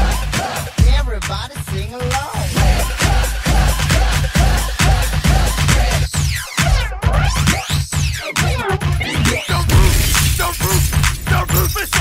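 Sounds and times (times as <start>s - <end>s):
rapid kick drum pattern: 0.0s - 8.0s
chopped vocal fragments: 9.3s - 12.0s.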